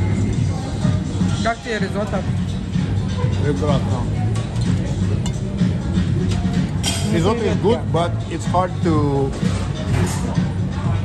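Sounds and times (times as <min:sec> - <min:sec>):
background music: 0:00.0 - 0:11.0
dishes clinking: 0:03.0 - 0:07.5.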